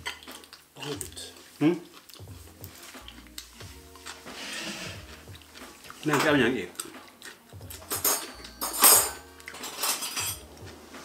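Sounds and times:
cutlery and dishes clinking: 0:00.0 - 0:01.2, 0:04.0 - 0:10.6.

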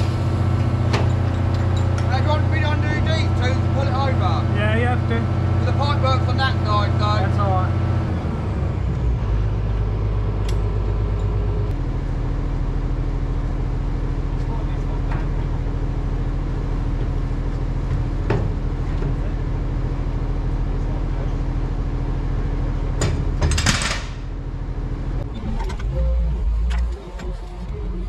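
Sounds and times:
excavator diesel engine running: 0:00.0 - 0:28.0.

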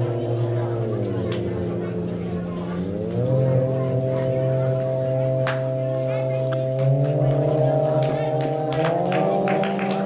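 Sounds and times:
synthesizer chord: 0:00.0 - 0:10.0.

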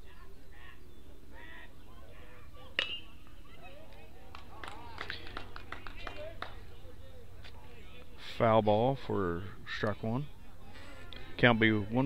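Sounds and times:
metal bat hitting ball: 0:02.8 - 0:03.2.

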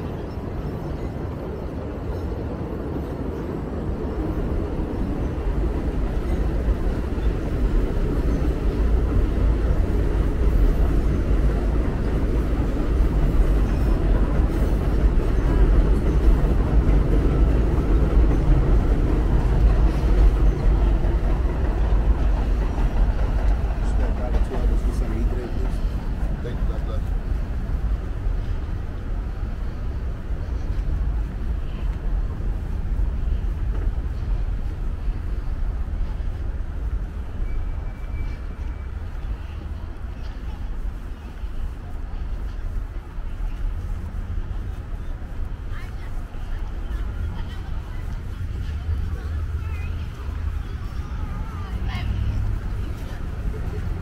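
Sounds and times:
city traffic: 0:00.0 - 0:54.0
elevated train rumbling on viaduct: 0:00.0 - 0:54.0.

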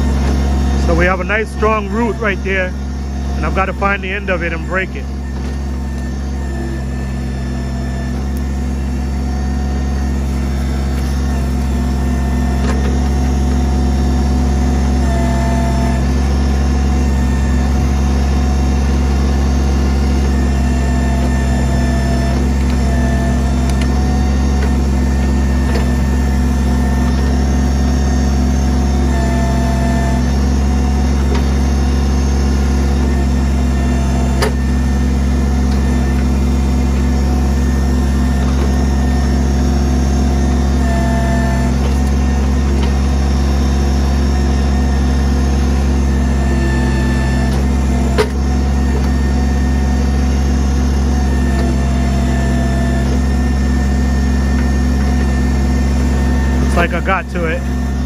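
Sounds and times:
diesel engine running under load: 0:00.0 - 0:58.0
hydraulic whine: 0:00.0 - 0:58.0.

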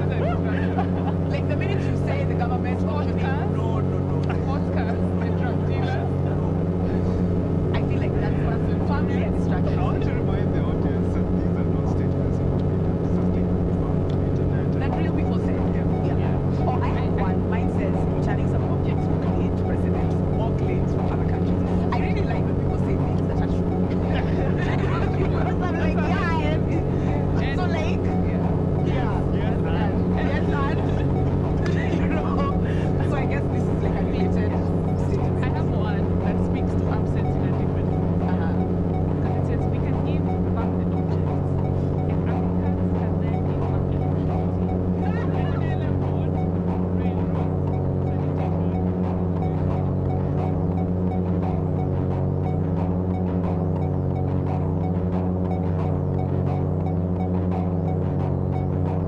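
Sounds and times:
synthesizer drone: 0:00.0 - 0:59.0.

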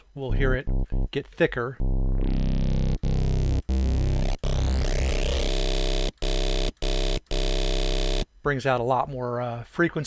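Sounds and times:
synth square-wave tones: 0:00.2 - 0:01.2, 0:01.8 - 0:08.3.

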